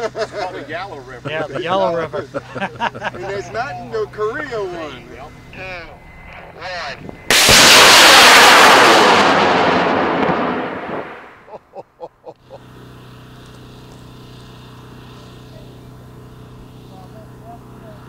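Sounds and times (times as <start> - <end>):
rocket motor roar: 4.6 - 11.4.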